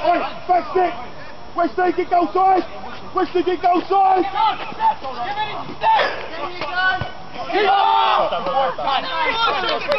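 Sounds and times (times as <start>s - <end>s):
men shouting: 6.8s - 9.9s.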